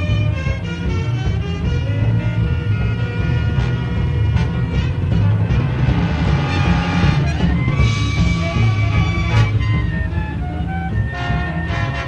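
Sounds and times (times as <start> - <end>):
jazz big band playing: 0.0 - 12.0.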